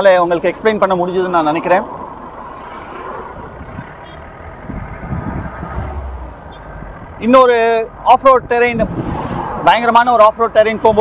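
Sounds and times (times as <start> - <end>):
vehicle engine and tyre rumble: 0.0 - 11.0
deeper rumble: 1.8 - 9.4
wind noise: 3.2 - 7.2, 8.1 - 9.8.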